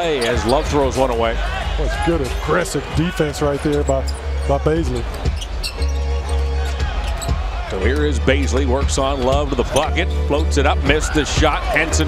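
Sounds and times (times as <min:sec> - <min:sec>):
arena music: 0:00.0 - 0:12.0.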